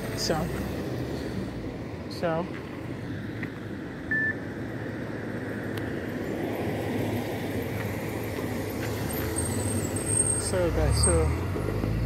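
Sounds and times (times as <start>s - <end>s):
road traffic rumble: 0.0s - 12.0s
high beep: 4.1s - 4.4s.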